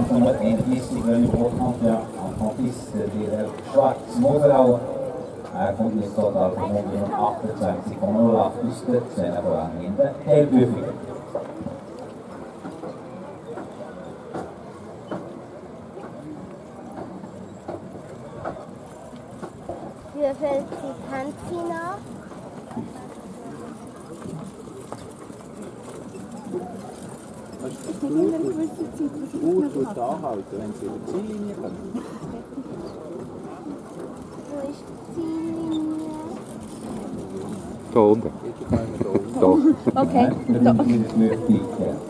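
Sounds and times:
people talking: 34.5s - 42.0s.

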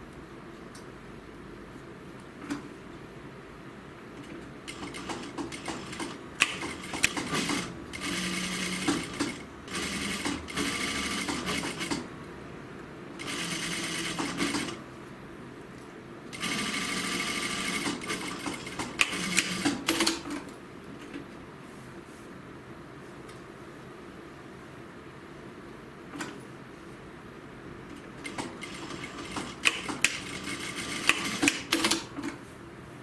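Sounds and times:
sewing machine stitching: 4.7s - 12.0s, 13.2s - 14.8s, 16.3s - 20.3s, 28.2s - 32.4s.

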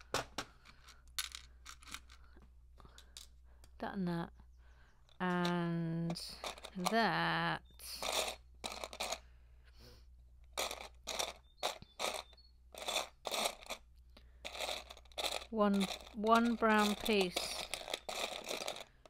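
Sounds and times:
hand sifting through plastic bricks: 0.0s - 3.4s, 5.1s - 9.2s, 10.5s - 19.0s.

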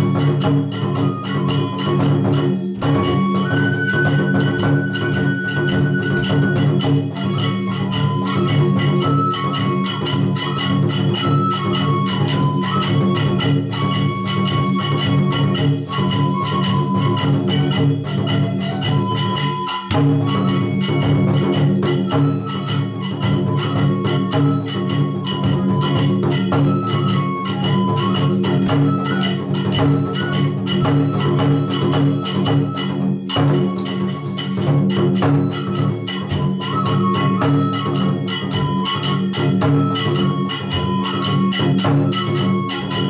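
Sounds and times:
bamboo flute high notes: 0.0s - 43.0s
drum beat: 0.0s - 43.0s
small hand cymbals: 0.0s - 43.0s.

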